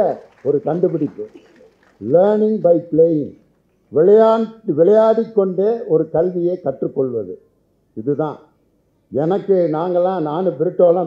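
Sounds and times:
man speaking into a microphone: 0:00.0 - 0:07.4, 0:08.0 - 0:11.0.

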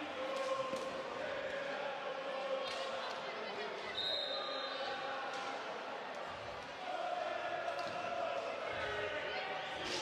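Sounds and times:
crowd chatter echoing: 0:00.0 - 0:10.0.

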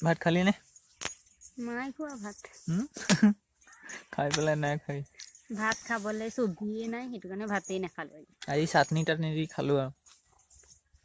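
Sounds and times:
woman speaking: 0:01.6 - 0:02.5, 0:05.5 - 0:08.3.

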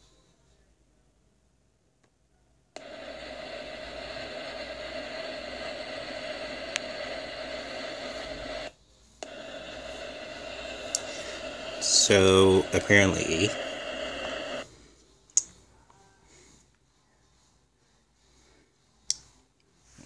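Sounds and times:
static hiss with hum: 0:02.8 - 0:15.5.

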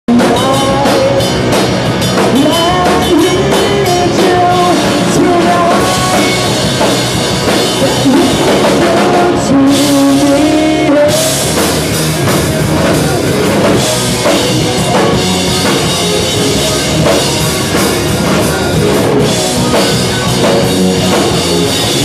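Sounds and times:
guitar: 0:00.0 - 0:22.0
woman singing: 0:00.1 - 0:01.4, 0:02.3 - 0:06.7
drum kit: 0:00.1 - 0:22.0.

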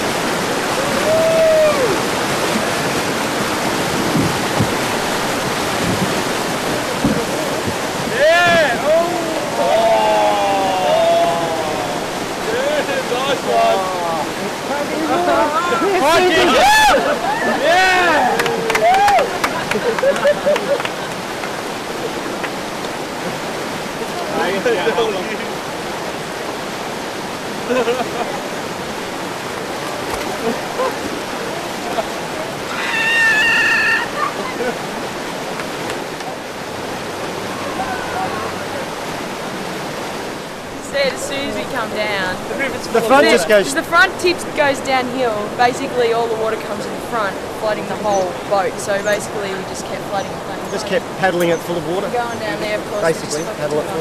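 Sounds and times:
whitewater rapids rushing: 0:00.0 - 0:54.0
people shouting and whooping: 0:00.7 - 0:02.1, 0:08.1 - 0:12.8, 0:15.1 - 0:20.7, 0:32.7 - 0:34.8, 0:37.5 - 0:38.8.

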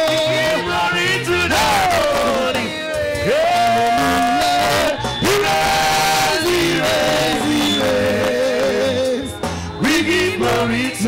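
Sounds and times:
congregation singing: 0:00.0 - 0:11.0
lead voice singing through pa: 0:00.0 - 0:11.0.

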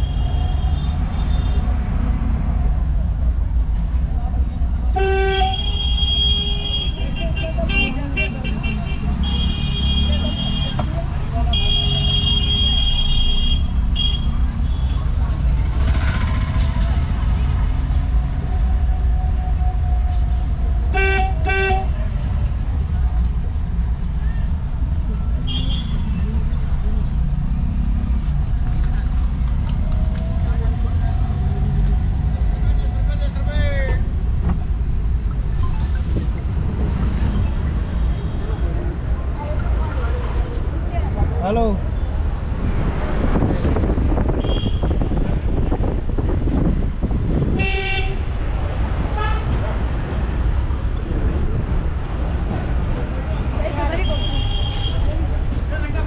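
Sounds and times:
engine and road rumble: 0:00.0 - 0:56.0
vehicle horns honking: 0:04.9 - 0:15.0, 0:20.9 - 0:22.0, 0:25.4 - 0:26.2, 0:44.3 - 0:45.4, 0:47.5 - 0:48.4, 0:49.1 - 0:49.6, 0:53.9 - 0:55.2.

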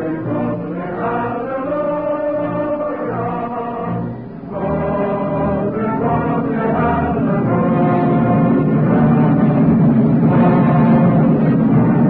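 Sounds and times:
orchestral brass chords: 0:00.0 - 0:12.0.

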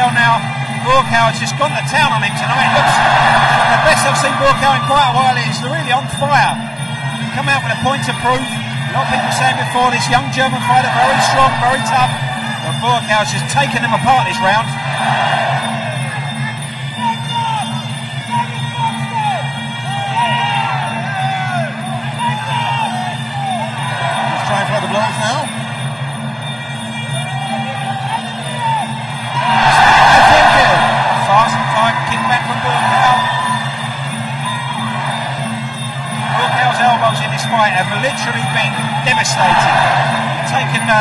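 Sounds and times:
crowd cheering and shouting: 0:00.0 - 0:41.0
traditional ring music: 0:00.0 - 0:41.0.

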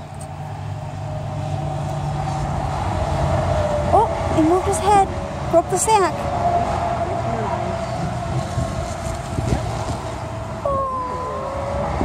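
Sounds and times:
truck driving by humming: 0:00.0 - 0:12.0.

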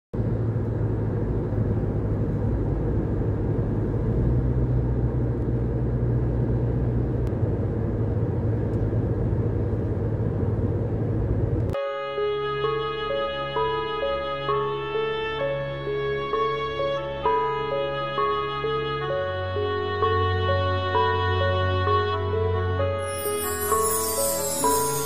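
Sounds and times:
car road and engine rumble: 0:00.2 - 0:11.8
music: 0:11.8 - 0:25.0.

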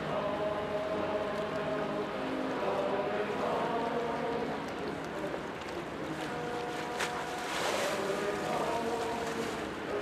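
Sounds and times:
ship bow wave rushing: 0:07.0 - 0:09.6.

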